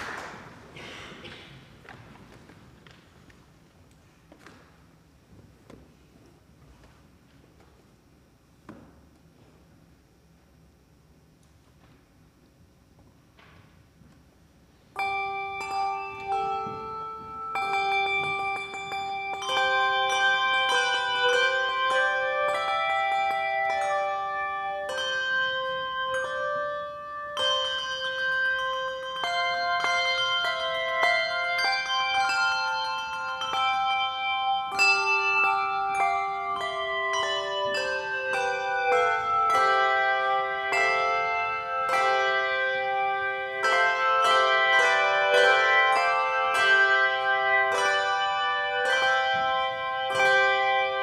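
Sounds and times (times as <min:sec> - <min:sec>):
handbell choir ringing chords: 0:15.0 - 0:51.0.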